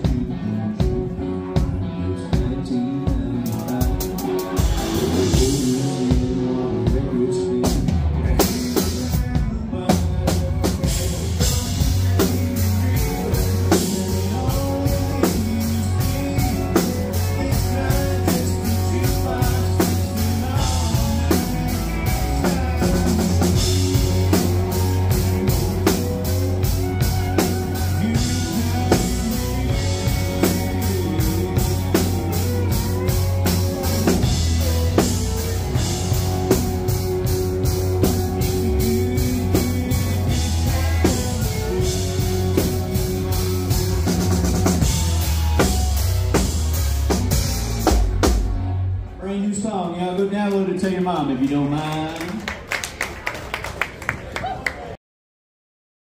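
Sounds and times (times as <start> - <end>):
acoustic and electric guitars: 0.0 - 49.2
drum kit steady beat: 2.4 - 48.8.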